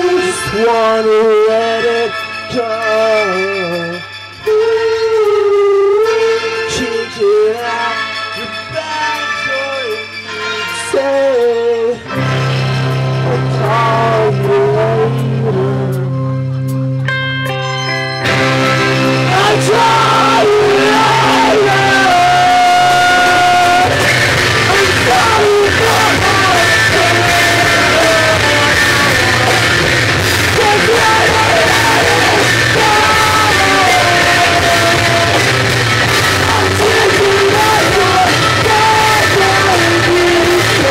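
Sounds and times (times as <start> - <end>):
live band playing rock music: 0.0 - 40.9
electric guitar bending lines: 12.1 - 40.9.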